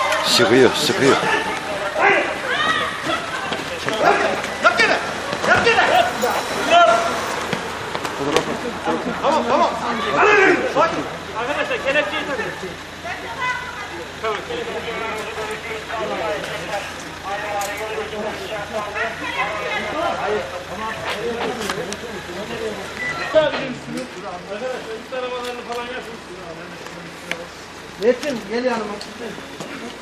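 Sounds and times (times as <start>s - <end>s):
men talking over one another: 0.0s - 30.0s.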